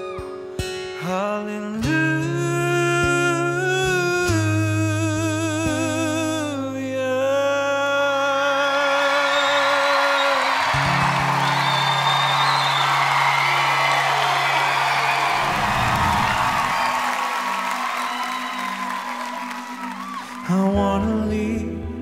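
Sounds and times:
audience cheering and applauding: 8.9s - 20.7s.

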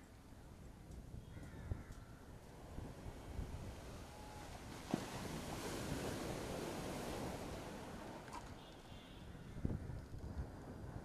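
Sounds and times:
wind rumble on microphone: 0.0s - 8.5s, 9.2s - 11.0s.

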